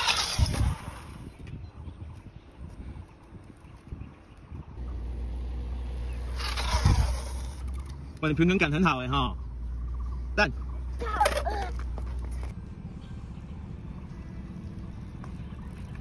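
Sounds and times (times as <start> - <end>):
bicycle tyre skidding on concrete: 0.0 - 1.4, 6.1 - 7.9
bicycle rolling: 0.0 - 4.8, 6.0 - 8.6, 11.0 - 16.0.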